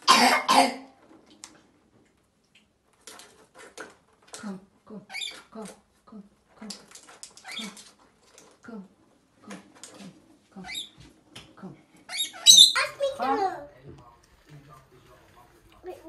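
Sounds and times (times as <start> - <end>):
lorikeets chattering: 12.1 - 13.0.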